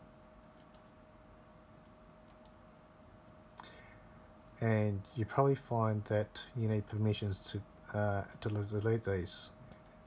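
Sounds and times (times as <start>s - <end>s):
faint steady hum: 0.0s - 10.0s
computer mouse clicks: 0.5s - 1.0s, 1.8s - 2.6s, 9.7s - 10.0s.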